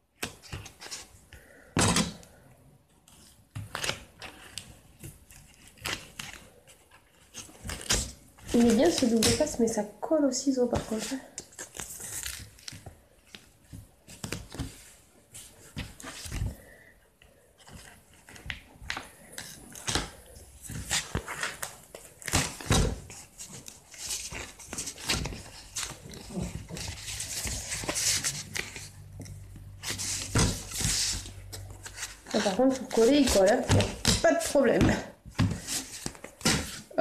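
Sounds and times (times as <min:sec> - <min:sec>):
paper handled on table: 0:17.6 - 0:37.0.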